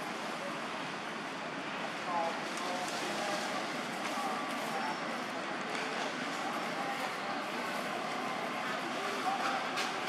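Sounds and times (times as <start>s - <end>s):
faint distant voices: 0.0s - 10.0s
outdoor background noise: 0.0s - 10.0s.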